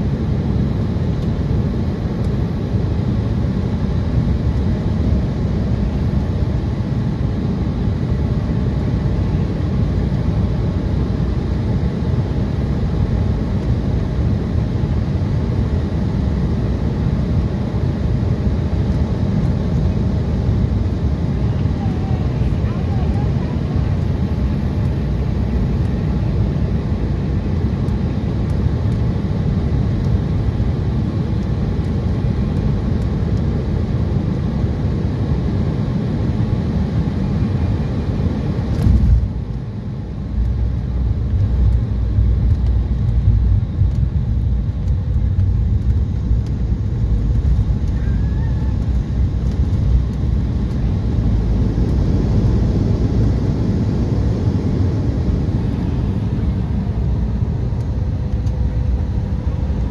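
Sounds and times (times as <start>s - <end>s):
jet engine cabin rumble: 0.0s - 59.9s
rushing air: 48.6s - 59.9s.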